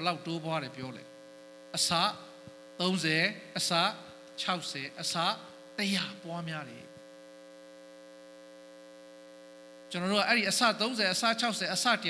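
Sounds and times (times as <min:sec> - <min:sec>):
electrical mains hum: 0:00.0 - 0:12.0
person speaking: 0:01.7 - 0:07.0.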